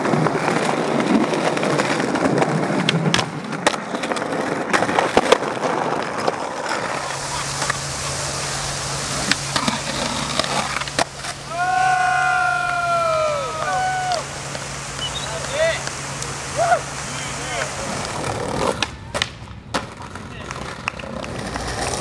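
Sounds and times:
skateboard clacking on ground: 0.0 - 11.7, 17.5 - 22.0
skateboard wheels rolling on pavement: 0.0 - 22.0.

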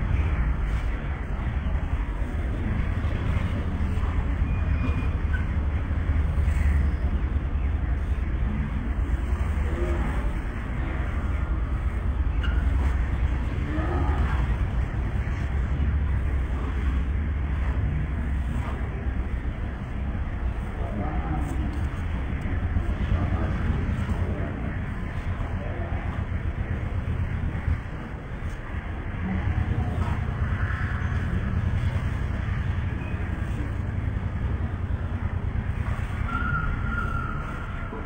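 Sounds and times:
people talking quietly: 0.0 - 38.0
steady low rumble: 0.0 - 38.0.

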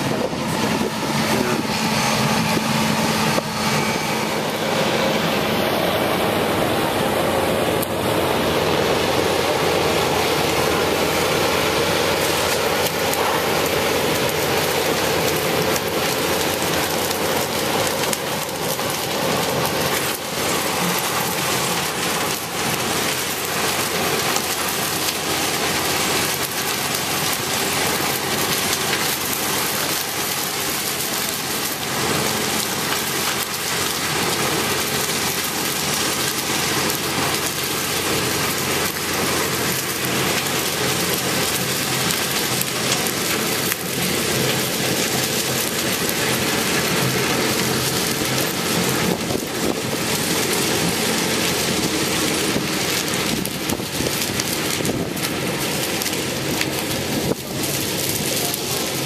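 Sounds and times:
harvester engine running: 0.0 - 59.0.

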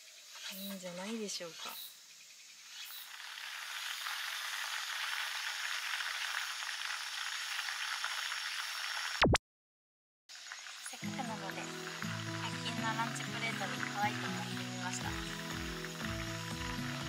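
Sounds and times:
steady hiss: 0.0 - 9.2.

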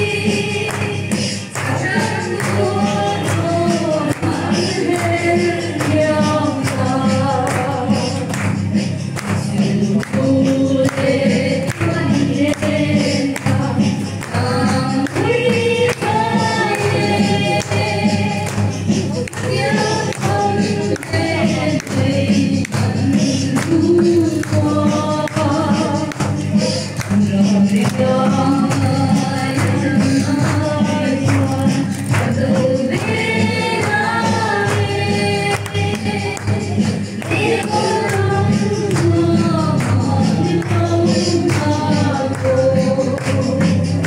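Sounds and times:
group singing in unison: 0.0 - 44.0
steady percussion beat: 0.0 - 44.0.

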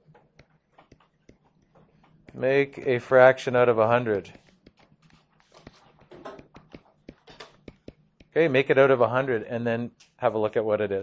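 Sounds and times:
stylus writing on tablet screen: 0.0 - 9.3.

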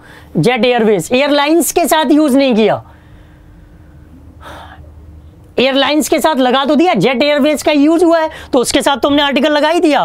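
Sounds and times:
steady low hum: 0.0 - 10.0
man breathing in: 2.9 - 4.9.

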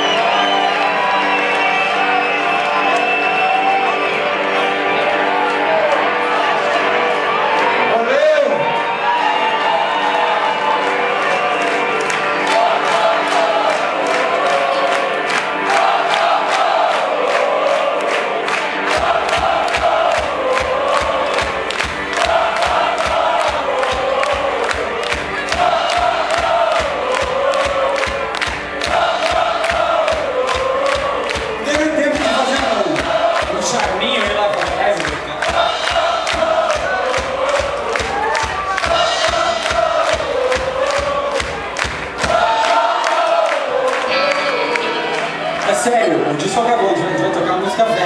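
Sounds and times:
loud live rock band: 0.0 - 48.0
voices chanting along: 12.4 - 34.1, 35.3 - 45.4.

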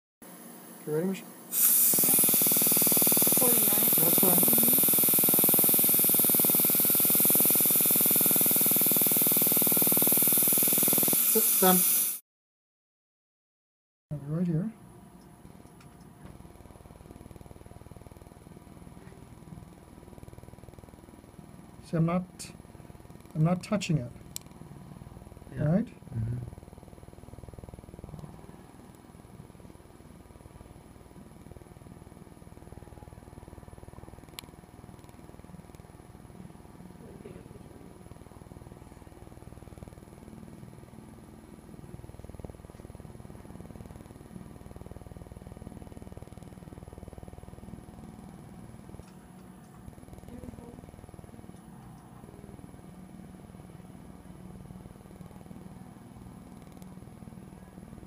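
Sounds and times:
low machine hum: 0.3 - 11.8, 14.1 - 58.0
thin high whine: 0.4 - 12.2.

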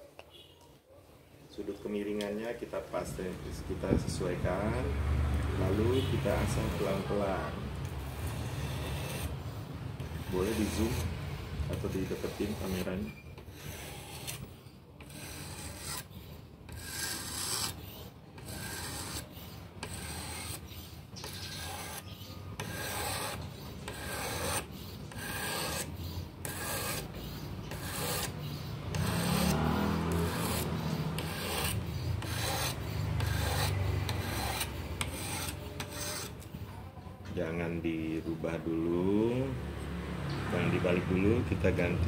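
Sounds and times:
whetstone scraping knife blade: 11.7 - 36.5.

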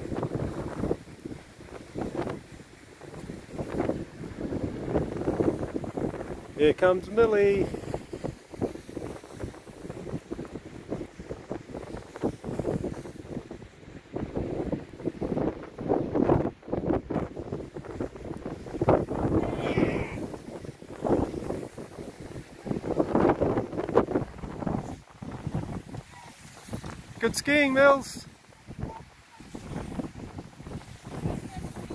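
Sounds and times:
wind on microphone: 0.0 - 31.9
skis scraping on snow: 11.6 - 13.3, 19.8 - 28.6.

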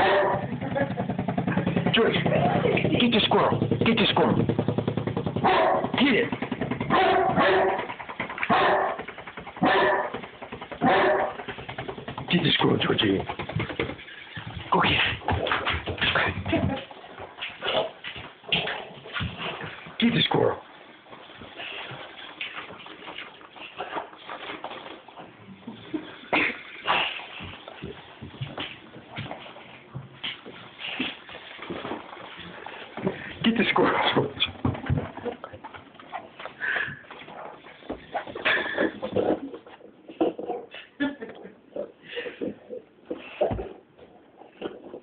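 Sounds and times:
dog barking: 0.0 - 0.4, 5.4 - 5.9, 6.9 - 7.9, 8.5 - 9.0, 9.6 - 10.2, 10.8 - 11.4
loud knocks: 0.3 - 12.6.

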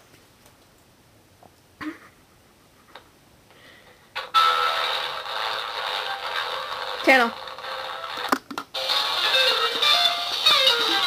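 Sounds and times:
small radio speaker playing: 4.2 - 11.0.

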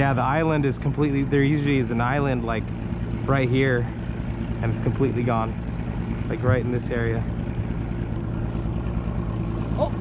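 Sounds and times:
outboard motor humming: 0.0 - 10.0.

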